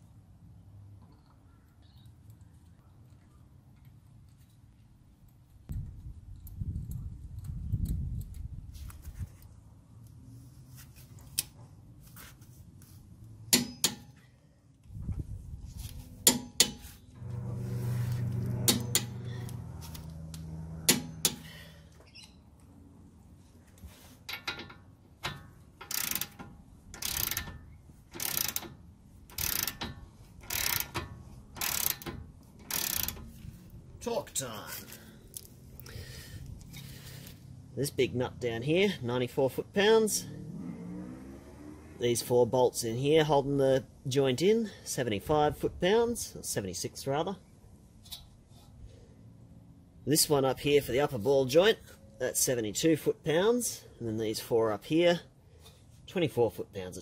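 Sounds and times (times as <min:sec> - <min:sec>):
metal tool clicks and knocks: 0:13.5 - 0:14.2, 0:20.9 - 0:21.5
ratchet wrench rasping: 0:18.2 - 0:19.6, 0:24.3 - 0:33.4.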